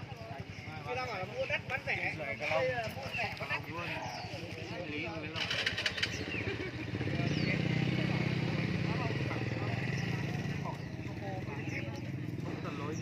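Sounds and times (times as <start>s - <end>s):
motorcycle engine running: 0.0s - 13.0s
songbirds chirping: 0.0s - 13.0s.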